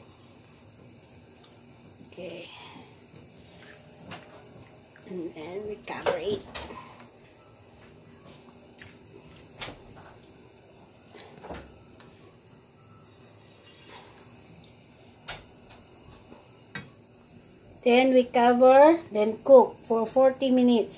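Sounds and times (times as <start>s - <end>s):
spatula scraping a pan: 13.6s - 14.2s.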